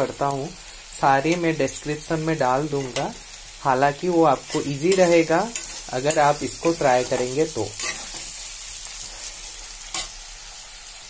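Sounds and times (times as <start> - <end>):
onions sizzling in hot oil: 0.0 - 11.0
spatula stirring: 4.5 - 10.1
spatula scraping a pan: 4.5 - 10.2.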